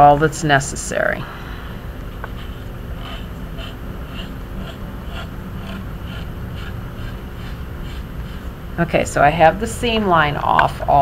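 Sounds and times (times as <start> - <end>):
low background rumble: 0.0 - 11.0
knife blade scraping porcelain: 2.2 - 8.5.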